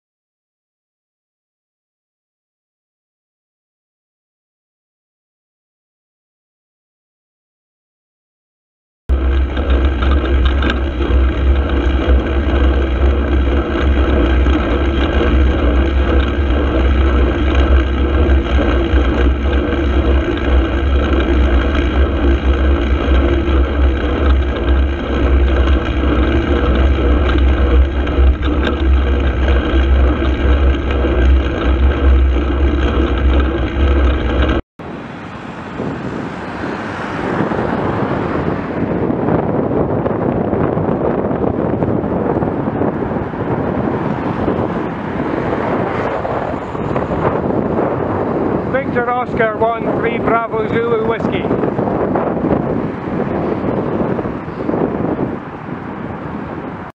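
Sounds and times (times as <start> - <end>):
rush of wind: 9.1 - 56.9
wind and road rumble: 9.1 - 56.9.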